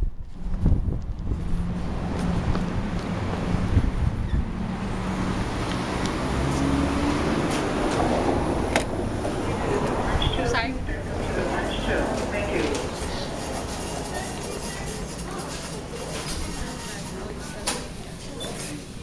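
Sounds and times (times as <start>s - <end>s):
wind rumbling on microphone: 0.0s - 15.1s
low engine hum: 0.0s - 16.0s
street traffic: 0.0s - 19.0s.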